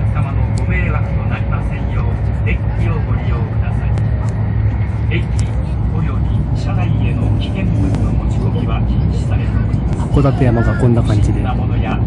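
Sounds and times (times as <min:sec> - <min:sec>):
passengers chattering faintly: 0:00.0 - 0:12.0
train cabin low rumble: 0:00.0 - 0:12.0.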